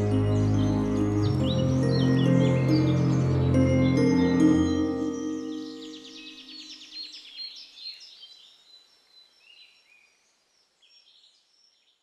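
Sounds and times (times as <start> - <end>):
music: 0.0 - 6.8
bird trill: 0.0 - 7.8
birds chirping: 0.0 - 10.1.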